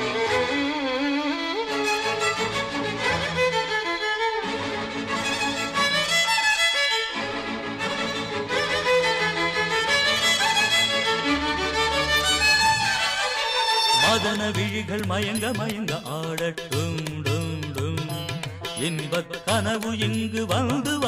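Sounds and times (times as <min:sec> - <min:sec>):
violins playing melody: 0:00.0 - 0:14.9.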